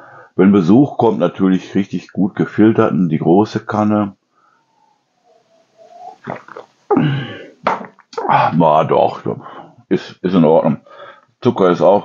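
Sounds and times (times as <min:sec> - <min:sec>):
voiced throat sound: 0:04.4 - 0:08.6
person sipping and swallowing: 0:05.8 - 0:08.1.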